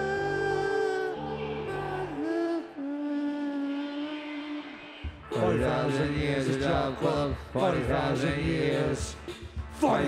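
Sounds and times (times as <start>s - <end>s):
steady drum beat: 5.2s - 10.0s.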